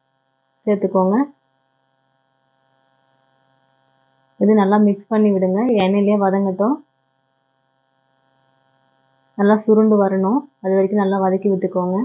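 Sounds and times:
faint steady hum: 0.0 - 12.0
person speaking: 4.4 - 6.8, 9.4 - 12.0.

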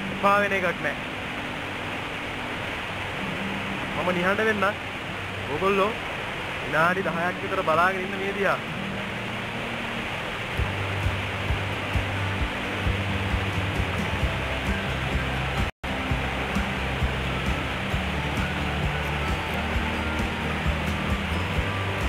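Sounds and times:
waterfall roaring: 0.0 - 22.0
background music with low beat: 10.6 - 22.0.

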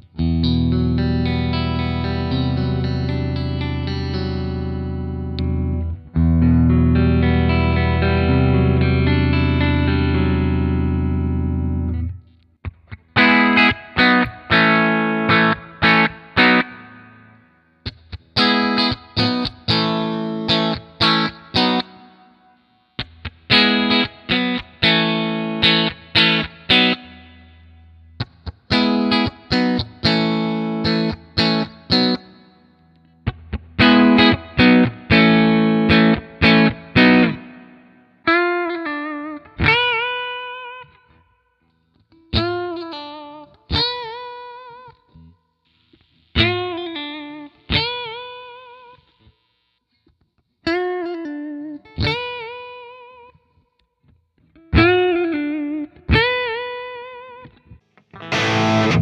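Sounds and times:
distorted electric guitar riff: 0.0 - 22.4, 23.0 - 40.9, 42.2 - 49.5, 54.6 - 59.0
guitar notes with vibrato: 0.0 - 41.3, 42.1 - 49.3, 50.7 - 53.4, 54.4 - 59.0.

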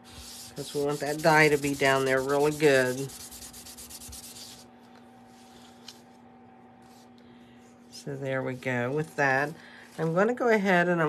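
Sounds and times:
tool rubbing on cardstock: 0.0 - 4.7.

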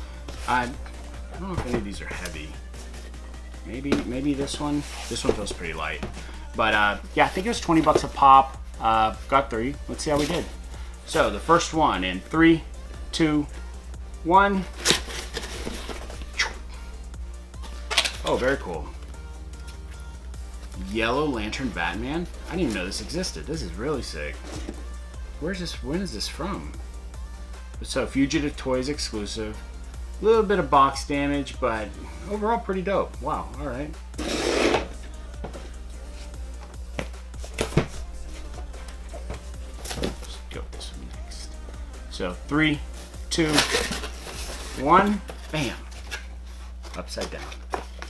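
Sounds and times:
background music: 0.0 - 48.0
cardboard boxes rustling: 0.2 - 8.3, 14.8 - 16.3, 24.3 - 24.8, 37.0 - 40.9, 43.4 - 48.0.

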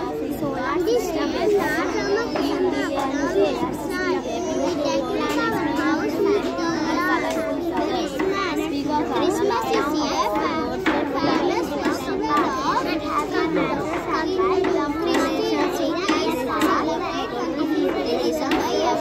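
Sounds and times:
crowd of children babbling: 0.0 - 19.0.

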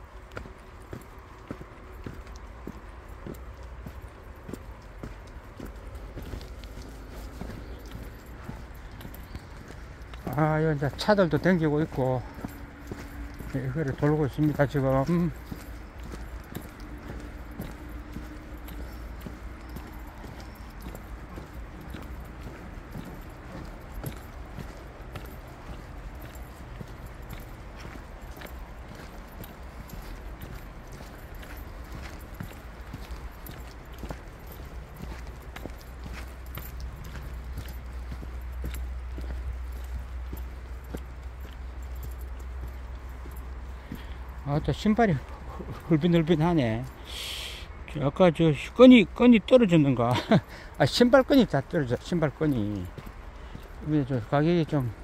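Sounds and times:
footsteps crunching on dirt trail: 0.0 - 55.0.

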